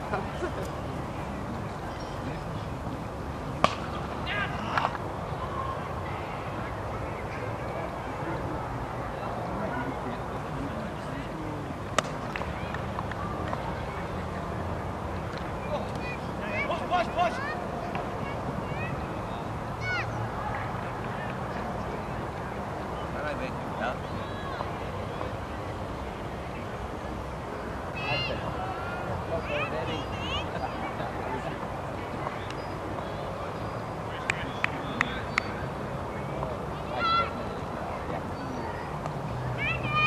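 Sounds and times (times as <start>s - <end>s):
faint distant voices: 0.0s - 40.0s
open-air background noise: 0.0s - 40.0s.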